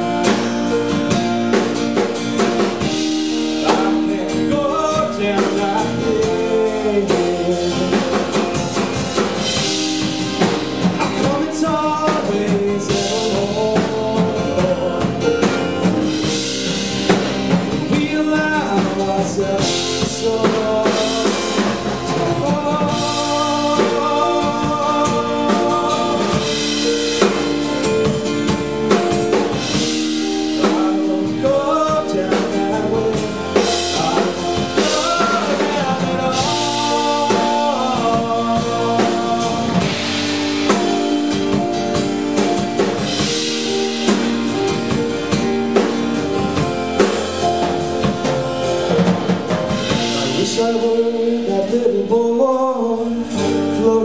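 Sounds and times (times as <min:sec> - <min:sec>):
man singing: 0:00.0 - 0:41.7, 0:47.4 - 0:54.0
drum kit with cymbals: 0:00.0 - 0:54.0.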